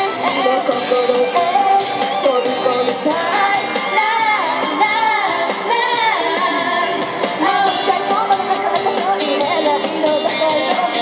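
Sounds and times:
loud amplified pop music: 0:00.0 - 0:11.0
women singing into microphones: 0:00.0 - 0:11.0.

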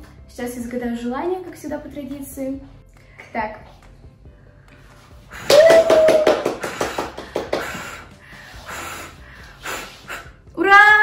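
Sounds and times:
candles blown out: 0:05.2 - 0:10.4
people cheering: 0:05.4 - 0:06.6
people clapping: 0:05.4 - 0:08.1.

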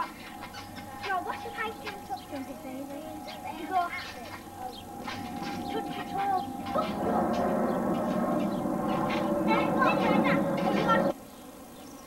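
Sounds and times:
children's voices and calls: 0:00.0 - 0:11.2
jet airliner flying overhead: 0:00.0 - 0:11.2.

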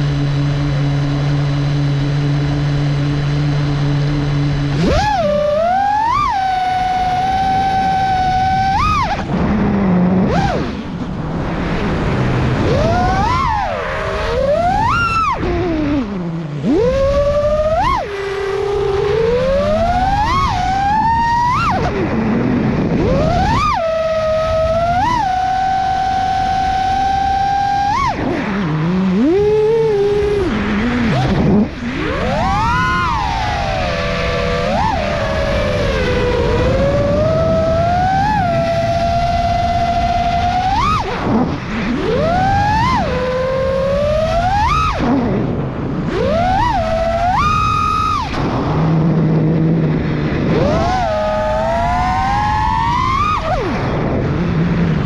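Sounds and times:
quadcopter motors whining: 0:00.0 - 0:55.0
wind rumble on camera: 0:00.0 - 0:55.0.

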